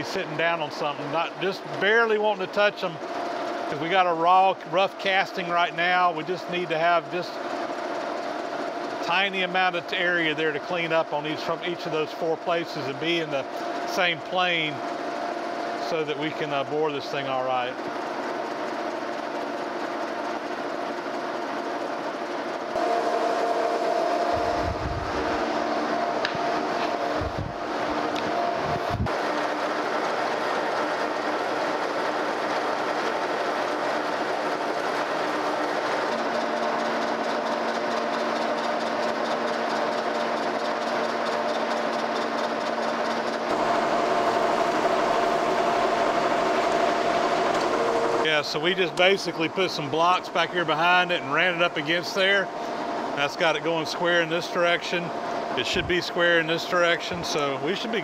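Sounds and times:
boring mill whining: 0:00.0 - 0:58.0.

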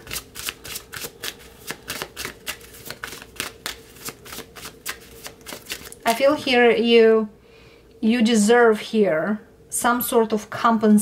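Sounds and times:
cards being shuffled: 0:00.0 - 0:06.2.

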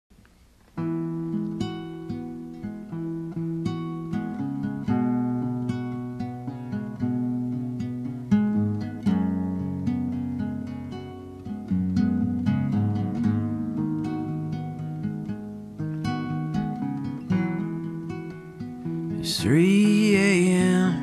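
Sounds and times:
plucked acoustic guitar: 0:00.6 - 0:21.0.

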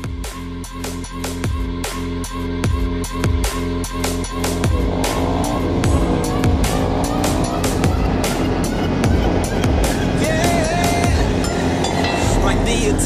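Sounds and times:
electronic music with drum beat: 0:00.0 - 0:13.0
motorcycle engine accelerating: 0:04.2 - 0:13.0.

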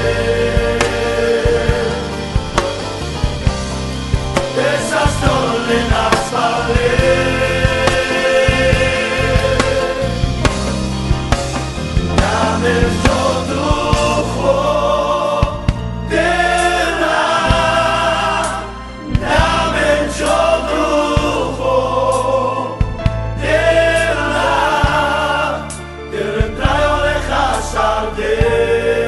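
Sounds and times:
voices singing together: 0:00.0 - 0:03.5, 0:04.3 - 0:10.8, 0:11.9 - 0:29.0
drum beat: 0:00.0 - 0:14.5, 0:19.1 - 0:19.9
bass line: 0:00.0 - 0:29.0.

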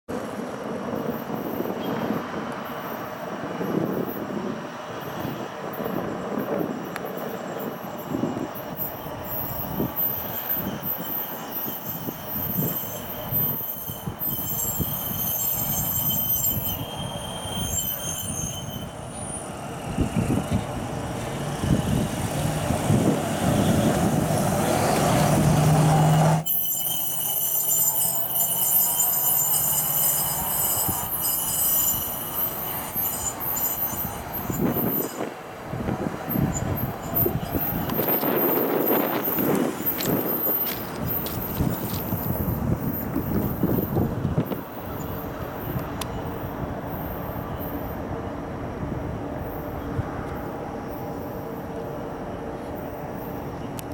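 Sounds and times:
steel wheels rumbling on rails: 0:00.1 - 0:53.9
high-pitched squeal: 0:07.4 - 0:20.5, 0:24.7 - 0:35.4.

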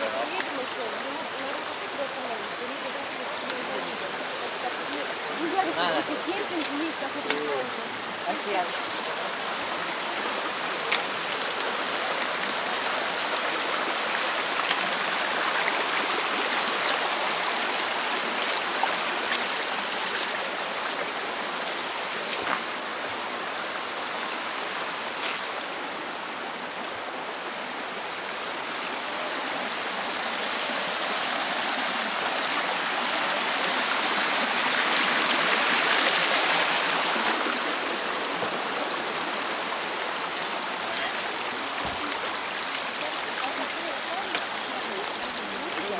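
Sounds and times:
stream running over stones: 0:00.0 - 0:45.9.

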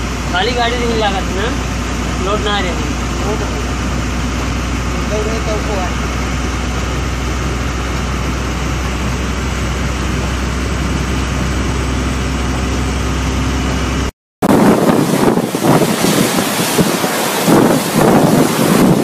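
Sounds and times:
vehicle engine and road rumble: 0:00.0 - 0:19.0
wind gusting against microphone: 0:14.4 - 0:19.0.

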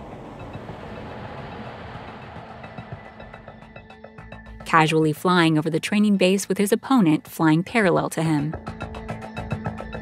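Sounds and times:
jet engine and airflow rushing: 0:00.0 - 0:04.3
faint background music: 0:02.3 - 0:09.9.

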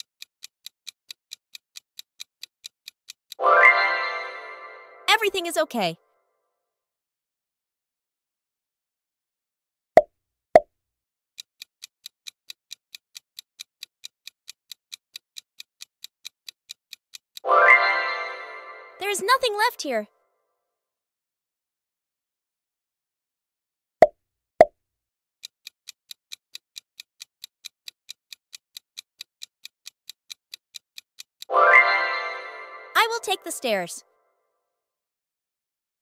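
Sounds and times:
fast clock ticking: 0:00.0 - 0:03.4, 0:11.4 - 0:17.4, 0:25.4 - 0:31.5
countdown timer ticking: 0:26.1 - 0:34.0.

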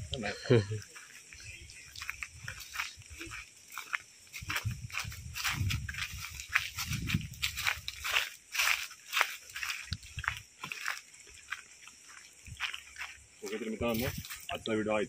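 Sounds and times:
footsteps crunching on dry leaves: 0:00.7 - 0:14.6.

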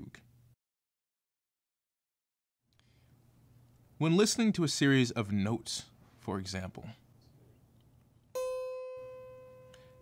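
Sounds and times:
single ringing musical note: 0:08.4 - 0:10.0.

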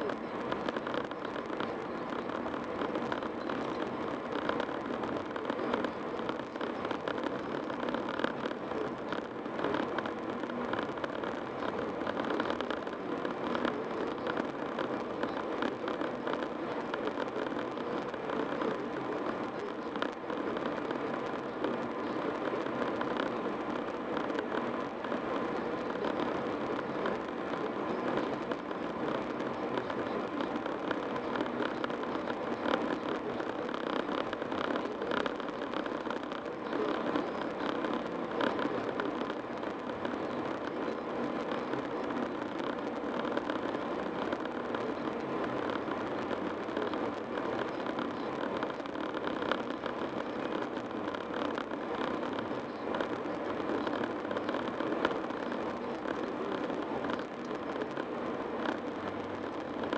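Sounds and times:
car road noise at highway speed: 0:00.0 - 0:59.9.

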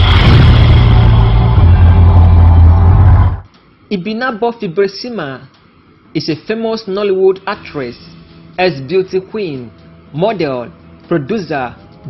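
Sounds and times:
intro music sting: 0:00.0 - 0:03.5.

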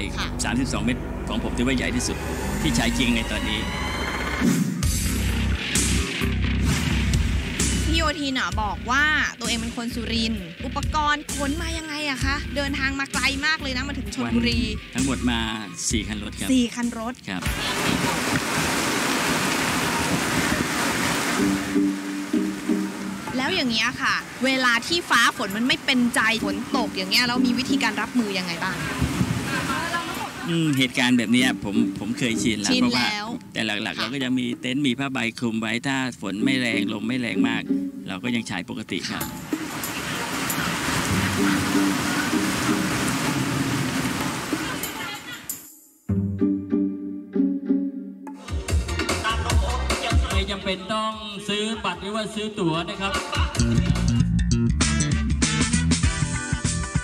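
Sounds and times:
background music: 0:00.0 - 0:17.5, 0:21.3 - 0:29.0, 0:30.5 - 0:39.9, 0:41.0 - 0:44.0, 0:44.8 - 0:57.0
heavy rain hissing: 0:17.4 - 0:33.2, 0:39.4 - 0:45.4
plucked string melody: 0:21.4 - 0:23.8, 0:25.5 - 0:28.5, 0:30.6 - 0:34.2, 0:36.4 - 0:38.4, 0:41.0 - 0:43.2, 0:46.1 - 0:48.4.

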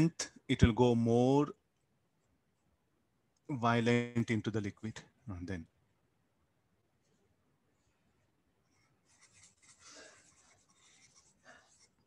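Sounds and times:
stylus scratching on tablet screen: 0:08.8 - 0:12.0.

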